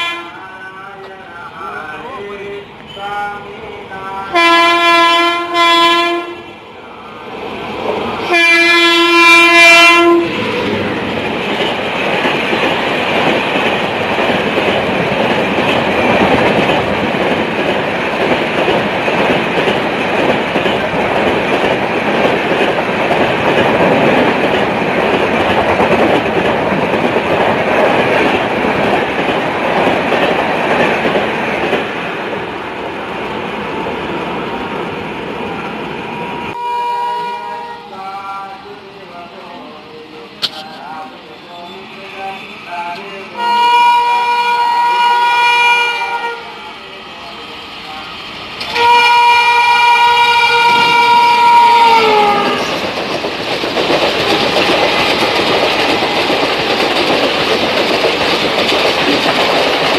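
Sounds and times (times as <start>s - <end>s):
train horn blasts: 0.0s - 0.4s, 4.3s - 6.5s, 8.3s - 10.4s, 36.5s - 38.0s, 43.4s - 46.6s, 48.7s - 52.7s
train passing at high speed: 0.0s - 59.9s.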